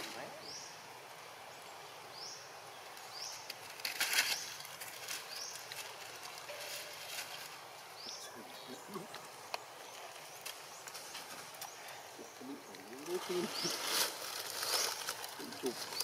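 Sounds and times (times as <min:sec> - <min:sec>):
dry leaves crackling and rustling: 0:02.9 - 0:16.0.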